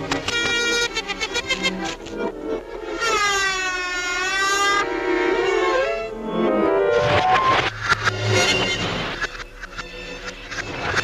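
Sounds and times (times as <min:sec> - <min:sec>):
long wailing tone: 0:02.5 - 0:10.7.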